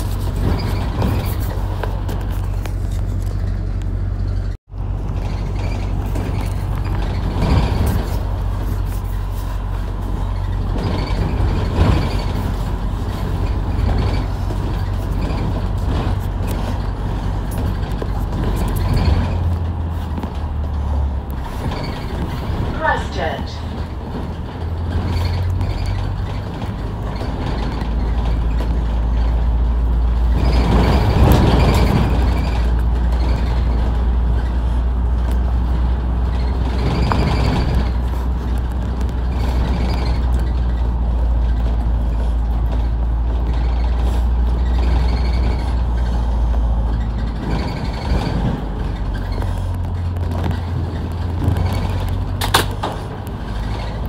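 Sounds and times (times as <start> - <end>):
bus engine droning: 0.0 - 54.0
knocks and rattles: 0.0 - 54.0.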